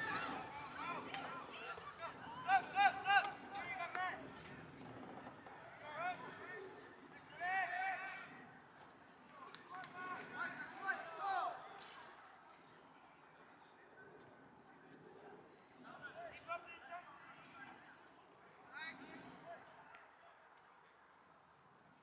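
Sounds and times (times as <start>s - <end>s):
distant voices shouting: 0.0s - 8.7s.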